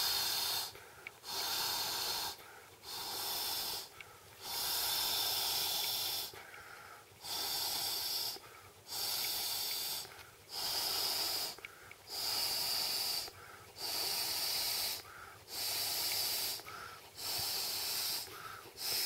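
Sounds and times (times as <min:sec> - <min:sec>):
breath blown into air mat valve: 0:00.0 - 0:06.5, 0:07.2 - 0:19.0.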